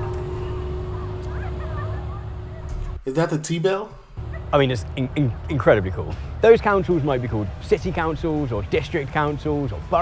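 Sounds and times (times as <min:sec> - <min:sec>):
large bell humming: 0:00.0 - 0:03.0
low outdoor rumble: 0:00.0 - 0:10.0.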